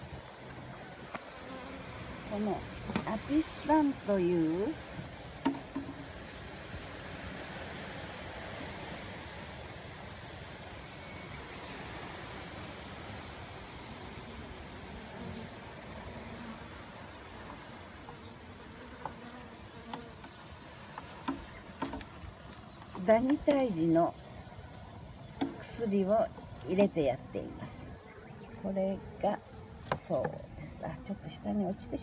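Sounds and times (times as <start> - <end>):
bees buzzing: 0.0 - 8.7, 10.7 - 32.0.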